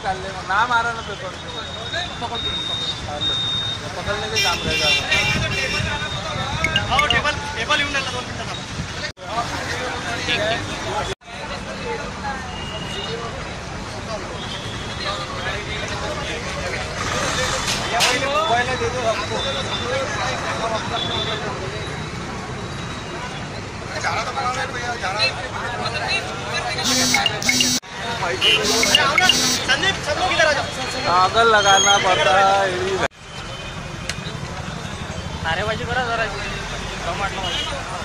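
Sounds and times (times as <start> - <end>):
people talking: 0.0 - 8.6, 23.9 - 33.1
road traffic rumble: 0.0 - 38.0.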